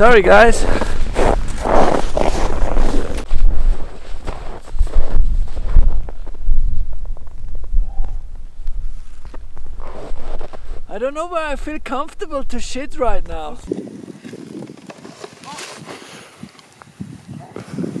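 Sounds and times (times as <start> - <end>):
wind rumbling on microphone: 0.0 - 10.9, 12.3 - 18.0
footsteps crunching through snow: 0.4 - 10.9.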